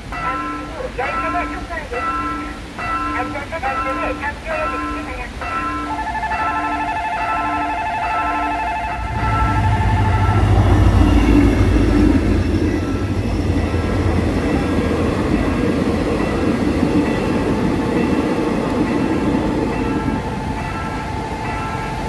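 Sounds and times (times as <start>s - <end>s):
train cars rolling past: 0.0s - 22.0s
locomotive low rumble: 5.9s - 22.0s.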